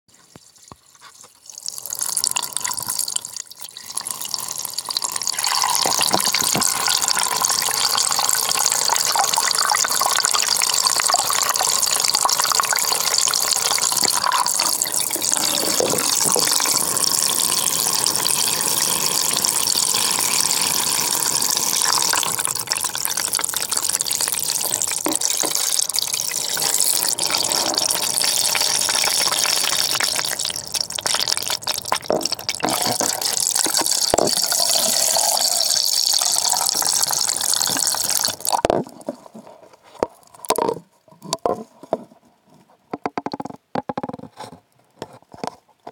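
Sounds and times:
tap water filling a basin: 1.4s - 39.0s.

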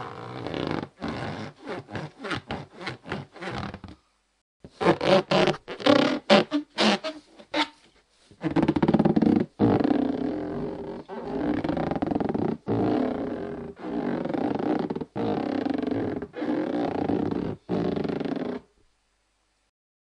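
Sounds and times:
hand rubbing rubber balloon: 0.0s - 4.0s, 4.7s - 18.7s.

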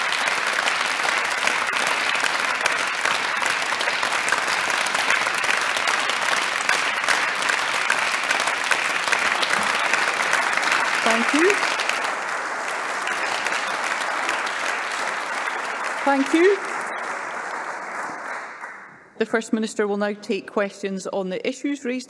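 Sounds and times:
crowd clapping: 0.0s - 19.1s.

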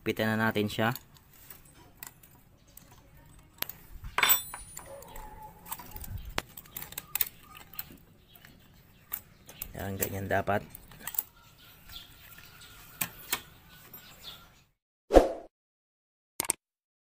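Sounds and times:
metal tools clicking and clinking: 0.6s - 11.3s
ringing metal clink: 4.2s - 5.8s.

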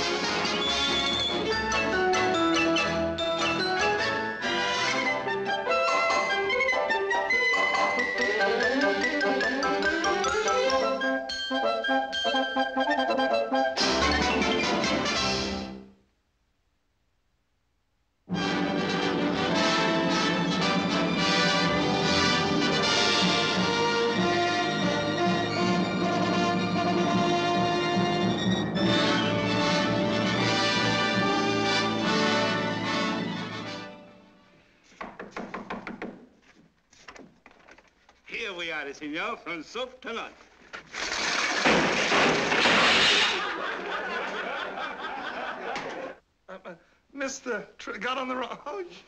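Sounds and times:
orchestral title music: 0.0s - 15.9s, 18.3s - 34.3s.

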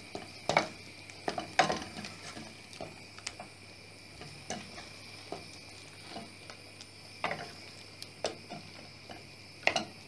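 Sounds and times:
spatula tapping metal pot: 0.1s - 3.5s, 8.2s - 10.0s.

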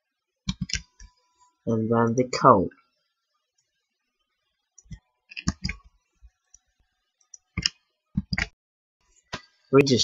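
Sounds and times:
computer mouse clicking: 0.5s - 1.1s, 4.8s - 5.9s, 6.5s - 8.6s.

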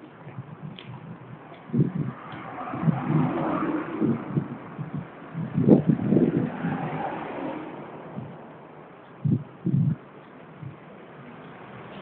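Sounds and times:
uneven low rumbling: 0.0s - 11.0s
motor vehicle engine: 0.0s - 12.0s.

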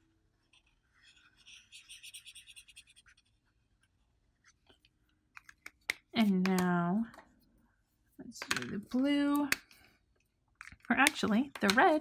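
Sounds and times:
felt-tip marker scribbling on paper: 1.2s - 3.3s.

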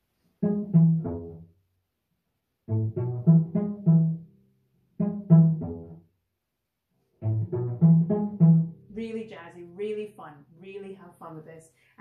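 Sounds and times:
cello plucked notes: 0.4s - 1.6s, 2.6s - 6.1s, 7.1s - 9.3s
woman speaking: 8.9s - 12.0s.

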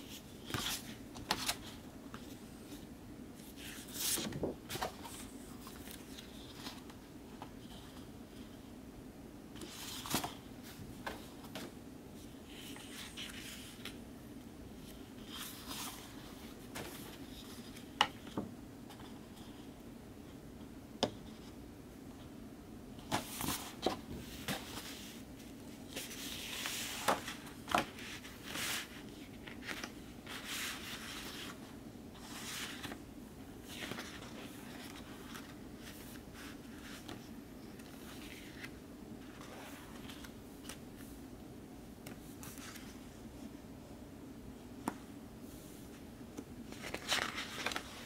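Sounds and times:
paper sliding and rustling: 25.9s - 31.6s, 32.2s - 33.0s, 46.7s - 48.0s
card rustling: 46.7s - 48.0s.

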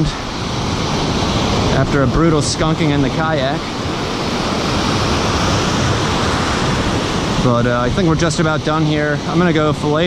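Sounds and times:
ocean waves breaking: 0.0s - 10.0s.

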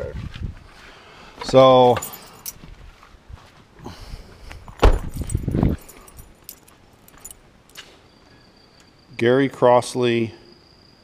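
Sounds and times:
car keys jangling: 1.8s - 2.6s, 4.6s - 7.4s
loud thump: 4.8s - 5.7s.

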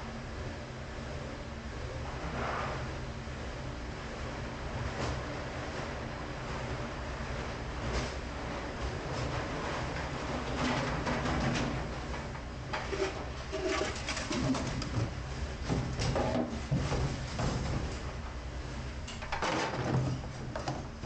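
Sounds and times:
kitchen machinery hum: 0.0s - 21.0s
water sloshing in a sink: 8.9s - 17.8s.

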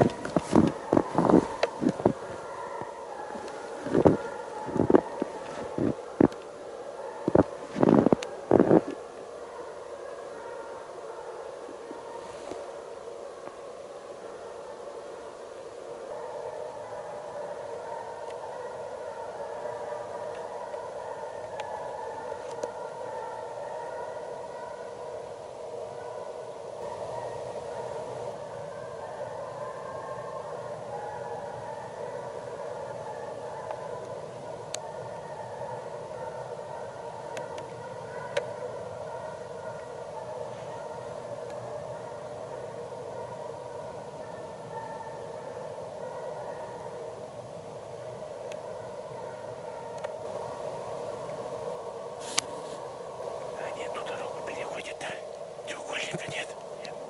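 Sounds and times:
hounds baying in distance: 0.0s - 57.0s.

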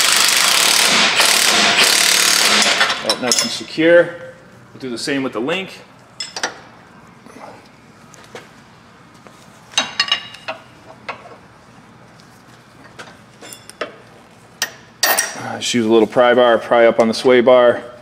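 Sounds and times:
wrench and metal parts clinking: 2.6s - 3.6s, 13.4s - 13.9s, 14.6s - 15.4s.

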